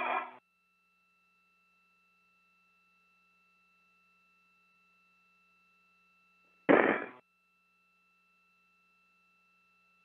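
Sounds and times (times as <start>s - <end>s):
faint radio tones hum: 0.0s - 0.4s, 6.5s - 7.2s
radio noise burst: 0.0s - 0.4s, 6.7s - 7.2s.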